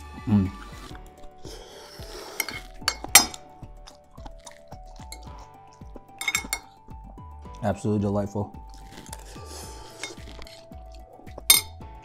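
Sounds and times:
soft background music with beat: 0.0s - 12.0s
spoon scraping a ceramic plate: 2.4s - 3.4s, 6.2s - 6.7s, 11.5s - 11.7s.

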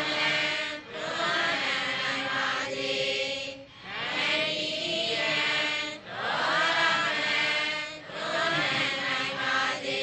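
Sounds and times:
person chanting: 0.0s - 10.0s.

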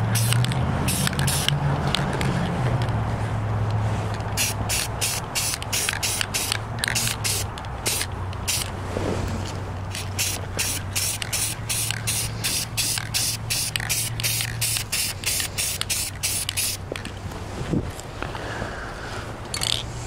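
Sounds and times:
spray paint can spraying: 0.0s - 1.6s, 4.4s - 8.7s, 9.9s - 16.9s.

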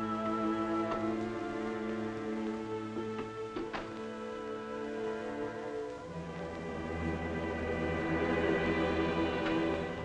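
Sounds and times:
orchestral film score: 0.0s - 10.0s.

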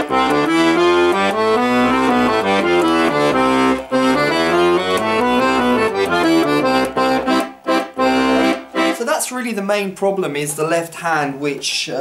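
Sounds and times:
accordion bass notes playing a scale: 0.0s - 9.4s.

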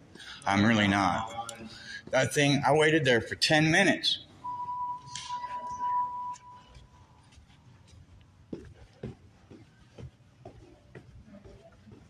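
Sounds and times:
electronic beep tone: 4.4s - 6.8s.

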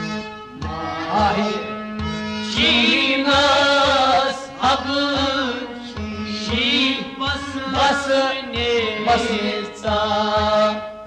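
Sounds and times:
man singing: 0.0s - 1.8s, 2.5s - 10.9s
accompanying instruments: 0.0s - 11.0s.

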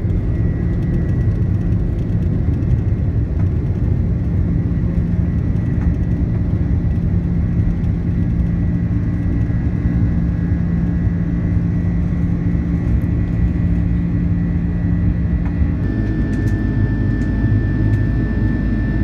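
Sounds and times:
jet engines at climb power: 0.0s - 19.0s.

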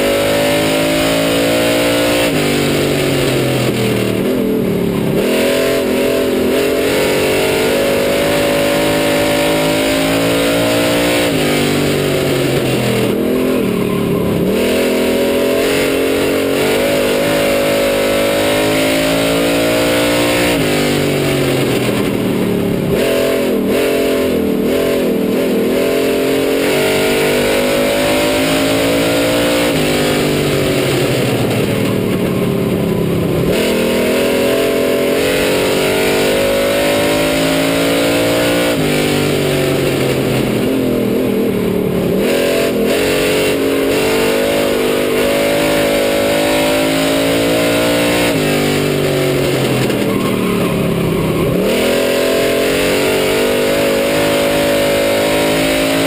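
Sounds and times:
race car engine rising and falling: 0.0s - 56.0s.

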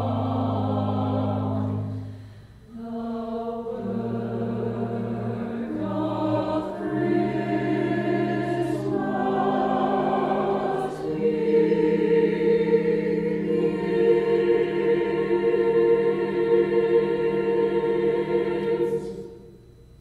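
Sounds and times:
choir singing held chords: 0.0s - 20.0s.

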